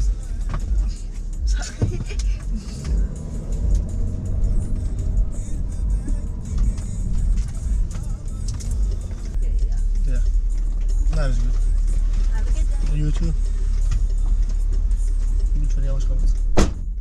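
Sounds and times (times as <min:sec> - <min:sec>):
music playing: 0:00.0 - 0:16.8
car engine and road rumble: 0:00.0 - 0:17.0.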